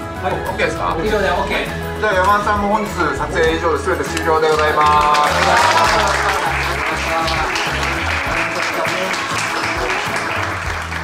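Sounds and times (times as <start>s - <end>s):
music with bass beat: 0.0s - 8.5s
people clapping: 3.0s - 11.0s.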